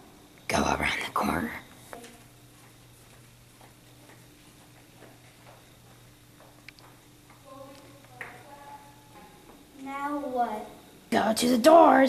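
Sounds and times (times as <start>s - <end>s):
steady low hum: 0.0s - 12.0s
footsteps on hard floor: 1.9s - 7.5s.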